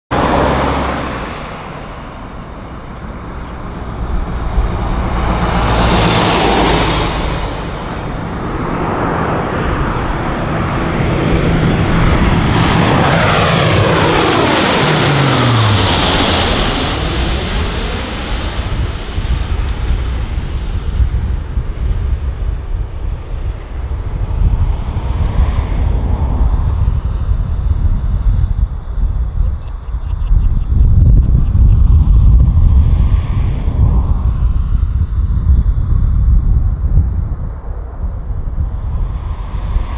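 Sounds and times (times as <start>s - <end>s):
turboprop aircraft droning overhead: 0.1s - 39.9s.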